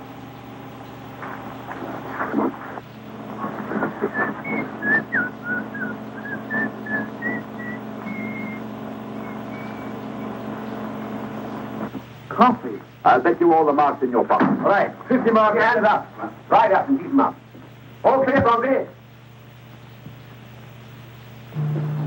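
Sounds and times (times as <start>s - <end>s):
engine hum: 0.0s - 13.0s, 19.4s - 22.0s
person whistling a tune: 4.1s - 8.6s.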